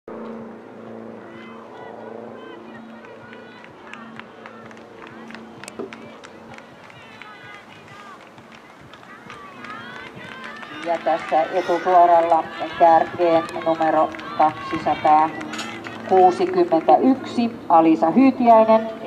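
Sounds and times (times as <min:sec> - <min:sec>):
faint distant voices: 0:00.1 - 0:19.0.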